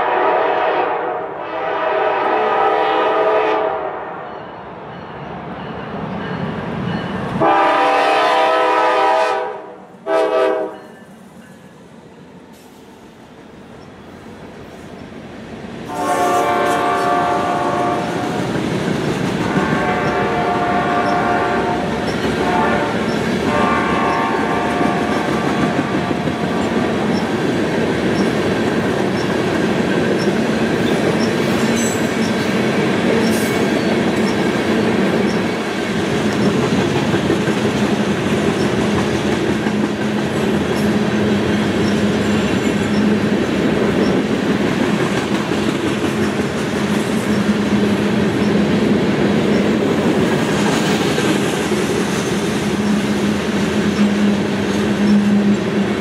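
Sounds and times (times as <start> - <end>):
locomotive horn: 0.0 - 4.3, 7.4 - 10.8, 15.9 - 18.4, 19.4 - 26.8
freight train rumbling past: 0.0 - 56.0
steel wheels clattering on rail: 15.9 - 56.0.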